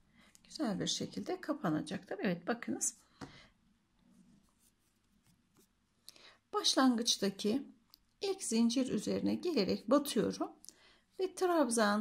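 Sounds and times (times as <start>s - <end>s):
rustle of yarn handling: 4.0s - 5.9s.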